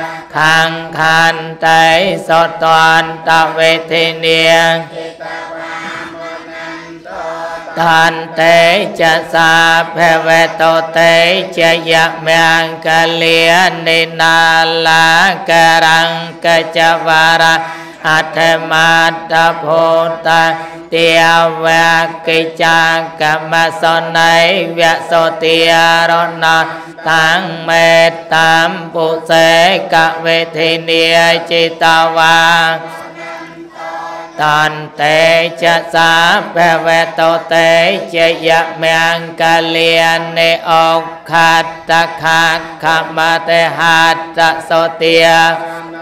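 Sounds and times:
monk chanting into microphone: 0.0 - 46.0.

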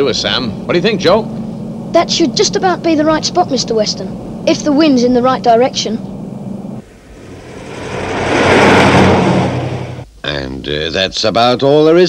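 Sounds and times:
vehicle driving past: 6.0 - 10.1.

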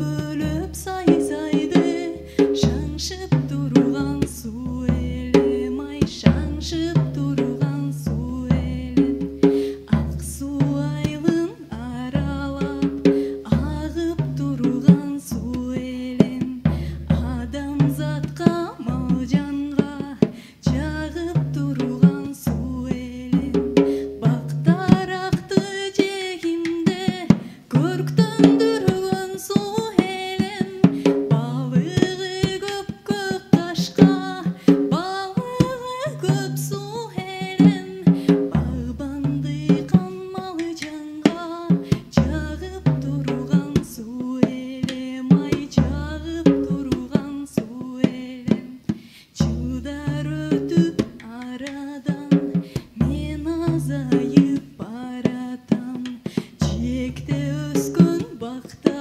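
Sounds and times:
drum kit played with mallets: 0.0 - 11.4, 12.0 - 25.7
woman singing into microphone: 0.0 - 59.0.

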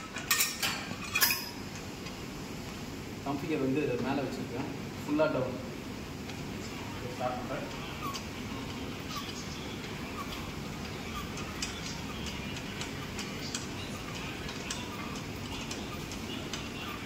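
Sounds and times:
gym room noise: 0.0 - 17.0
light clicks and ticks: 10.8 - 16.8.

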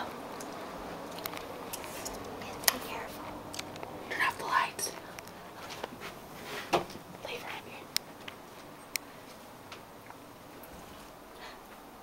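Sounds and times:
hushed whispering: 4.1 - 5.1, 7.2 - 7.9.

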